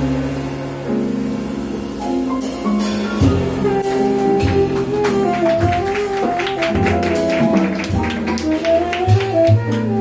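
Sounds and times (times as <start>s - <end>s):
drum kit with cymbals: 0.0s - 10.0s
piano: 0.0s - 10.0s
upright bass: 0.0s - 10.0s
tenor saxophone melody: 3.3s - 10.0s.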